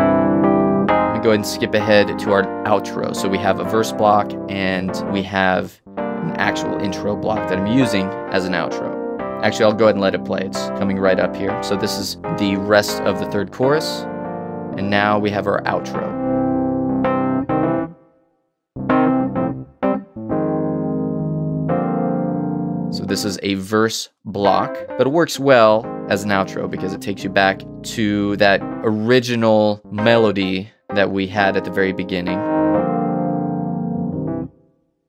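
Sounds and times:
electric piano chords: 0.0 - 18.1, 18.8 - 23.4, 24.4 - 34.6.

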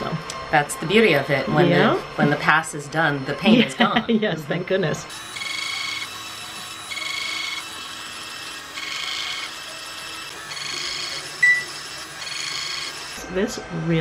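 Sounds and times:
ultrasound machine electronic tone: 5.1 - 13.3
short sharp beep: 11.4 - 11.7.

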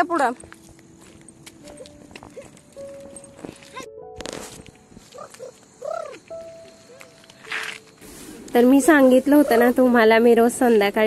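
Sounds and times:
flip-flop footsteps on concrete: 0.2 - 5.7.

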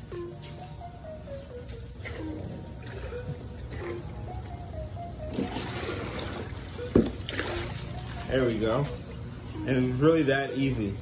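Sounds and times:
background music: 0.0 - 11.0
water pouring into plastic tub: 5.3 - 8.3.

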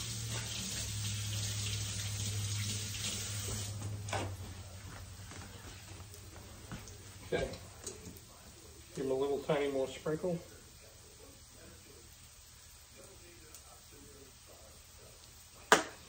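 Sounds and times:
faucet running: 0.0 - 4.1.

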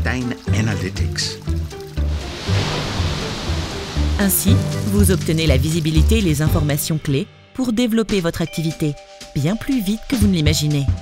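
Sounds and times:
water splashing: 0.3 - 7.1.

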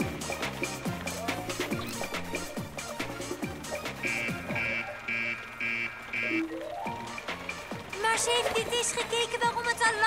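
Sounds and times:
background music: 0.0 - 10.0
cartoon alarm beeping: 4.0 - 6.6.

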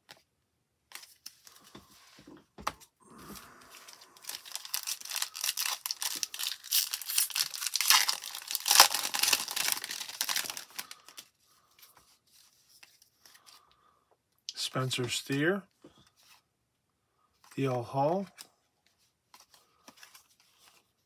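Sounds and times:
foil wrapper tearing and crinkling: 4.0 - 11.2.

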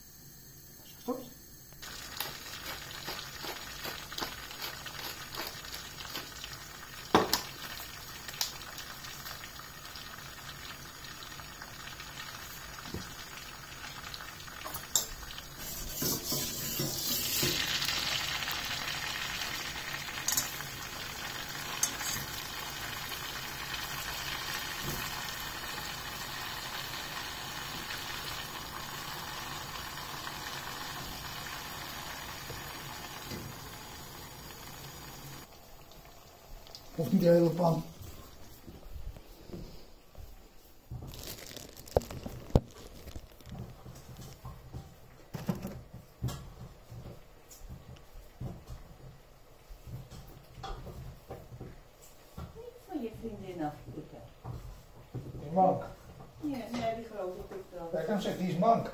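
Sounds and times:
food hissing in a pan: 1.8 - 35.5.

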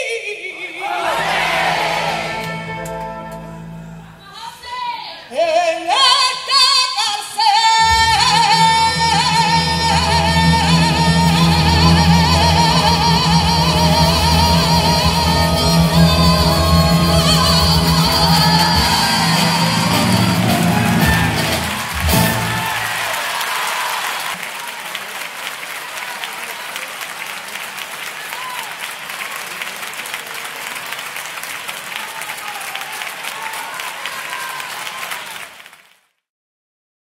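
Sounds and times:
audience applauding: 1.0 - 3.6, 12.6 - 36.2
woman singing with orchestra: 1.8 - 23.0.

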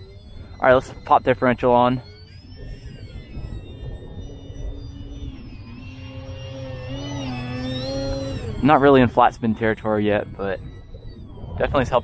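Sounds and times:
model plane motors whining: 0.0 - 12.0
wind rumble on microphone: 0.0 - 12.0.

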